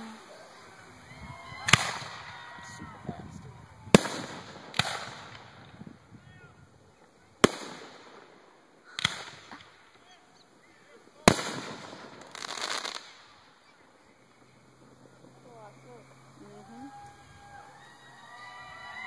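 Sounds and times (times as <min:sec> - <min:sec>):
crackling hiss of crackle stars: 0:00.0 - 0:19.0
firework shells bursting: 0:00.0 - 0:19.0.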